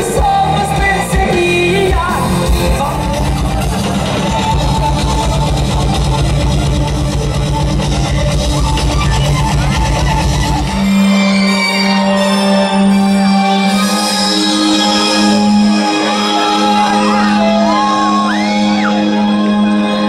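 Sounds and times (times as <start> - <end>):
heavy metal band playing live: 0.0 - 20.0.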